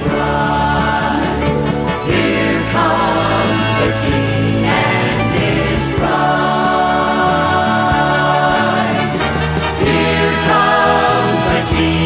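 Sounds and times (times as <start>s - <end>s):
gospel vocal group singing: 0.0s - 12.0s
instrumental accompaniment: 0.0s - 12.0s.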